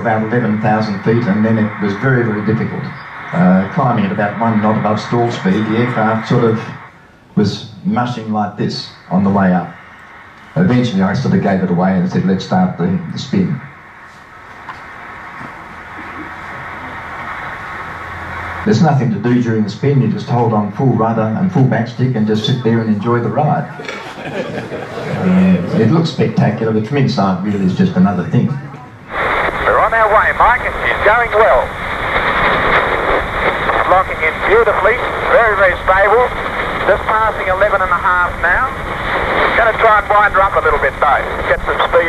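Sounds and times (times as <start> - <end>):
aircraft engine hiss over radio: 0.0 - 7.2, 7.9 - 21.1, 29.1 - 42.0.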